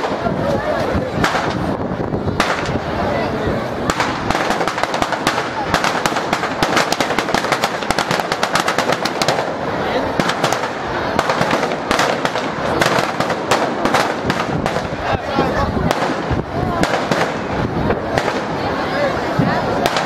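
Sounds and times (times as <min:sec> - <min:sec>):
firecrackers cracking and banging: 0:00.0 - 0:20.0.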